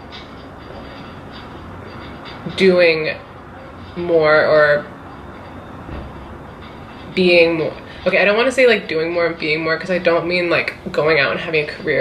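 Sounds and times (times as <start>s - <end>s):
low room rumble with hiss: 0.0s - 12.0s.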